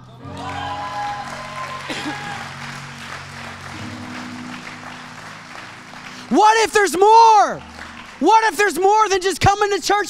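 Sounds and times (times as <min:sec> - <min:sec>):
soft keyboard chords: 0:00.0 - 0:09.4
congregation applauding: 0:00.2 - 0:10.0.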